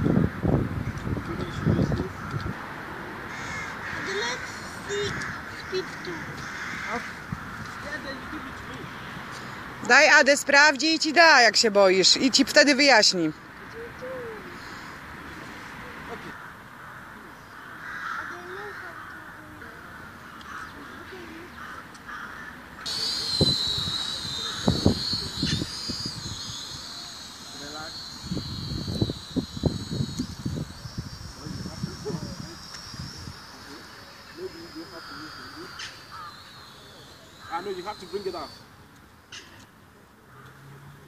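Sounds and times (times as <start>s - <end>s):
wind buffeting microphone: 0.0s - 3.1s, 22.9s - 33.8s
drone motors whining: 22.8s - 39.0s.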